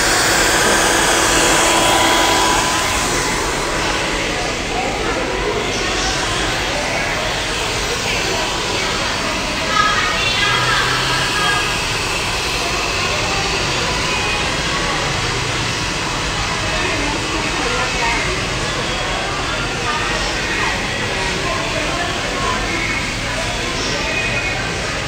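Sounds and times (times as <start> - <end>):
hair dryer blowing: 0.0 - 19.8.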